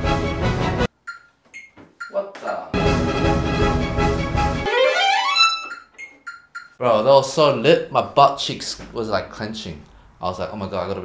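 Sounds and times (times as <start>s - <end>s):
violin playing fast passage: 4.4s - 5.7s.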